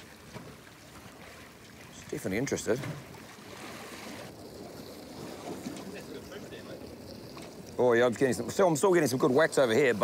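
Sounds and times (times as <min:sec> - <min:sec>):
sea and wind wash: 0:00.0 - 0:10.0.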